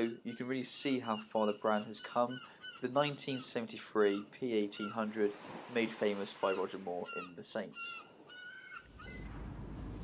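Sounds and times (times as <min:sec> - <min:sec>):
short clear bird calls: 0:00.3 - 0:05.4, 0:06.4 - 0:09.4
low rumble: 0:08.9 - 0:10.0.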